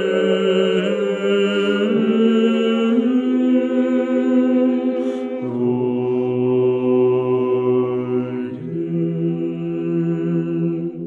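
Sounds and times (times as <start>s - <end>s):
choir chanting unaccompanied: 0.0s - 11.0s.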